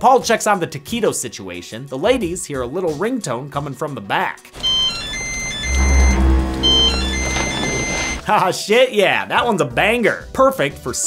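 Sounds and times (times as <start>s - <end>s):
phone ringtone beeps: 4.6s - 8.2s
held chord: 5.1s - 8.2s
low rumble: 5.6s - 8.2s.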